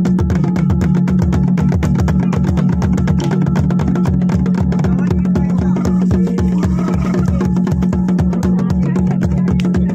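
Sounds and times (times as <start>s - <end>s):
fast drumming: 0.0s - 9.9s.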